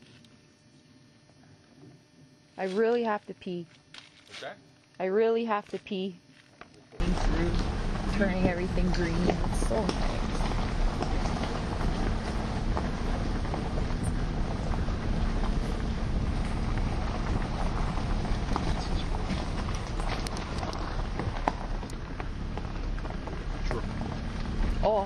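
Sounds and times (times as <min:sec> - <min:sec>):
wind noise on microphone: 0:07.0 - 0:24.9
engine and tyres rumbling: 0:07.0 - 0:25.0.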